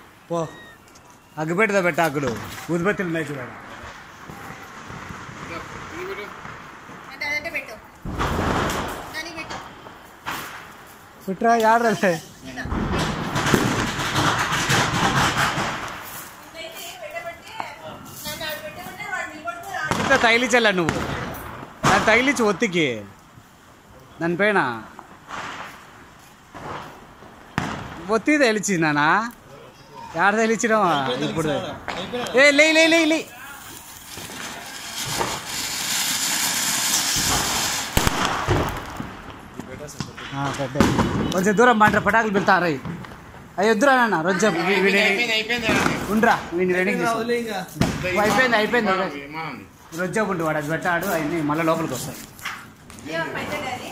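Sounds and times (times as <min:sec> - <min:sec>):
firework crackling hiss: 0:00.0 - 0:53.9.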